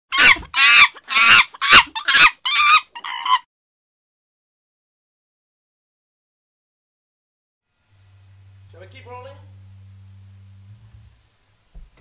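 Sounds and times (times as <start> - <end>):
high-pitched animal calls: 0.1 - 3.5.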